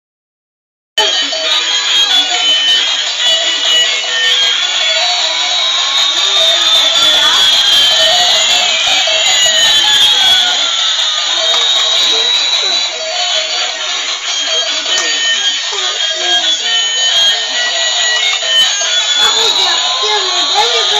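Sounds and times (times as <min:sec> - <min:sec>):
high electronic beeps: 0:01.0 - 0:20.9
toy electronic tunes: 0:01.0 - 0:20.9
rising and falling whines: 0:01.2 - 0:20.9.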